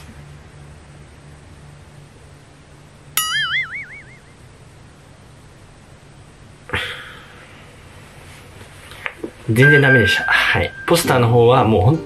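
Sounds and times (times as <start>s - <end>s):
cartoon boing: 3.2s - 4.3s.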